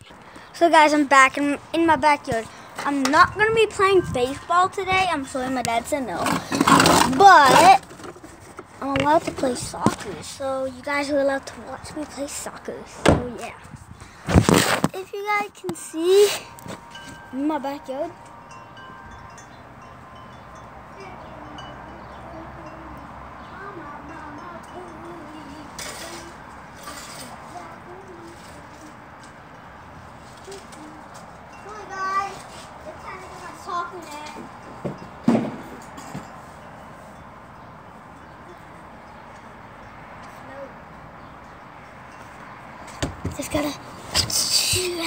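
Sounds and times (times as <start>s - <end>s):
steady outdoor hush: 0.0s - 45.0s.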